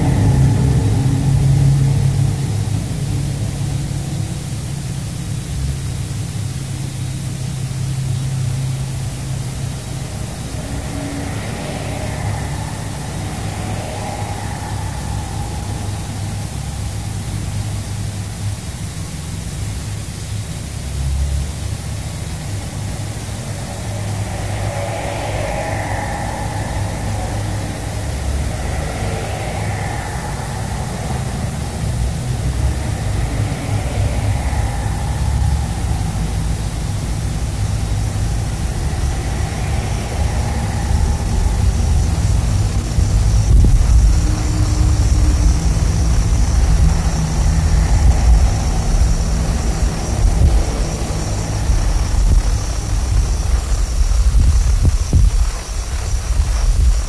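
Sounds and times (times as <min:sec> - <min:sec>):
faint whistling tones: 0:00.0 - 0:19.1, 0:20.3 - 0:57.0
wind buffeting microphone: 0:08.7 - 0:18.6, 0:22.0 - 0:57.0.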